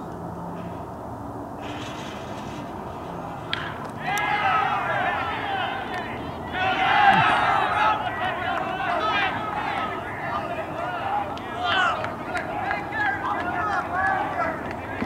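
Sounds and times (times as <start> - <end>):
crowd cheering and yelling: 3.4 - 15.0
bat hitting ball crack: 3.5 - 4.3.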